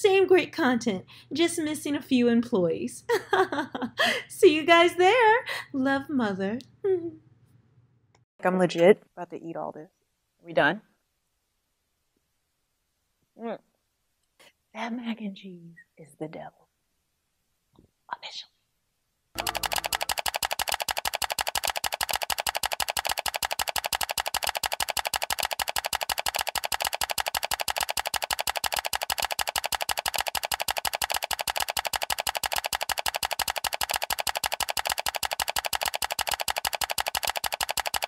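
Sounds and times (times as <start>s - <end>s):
music with fast percussive beat: 19.4s - 38.0s.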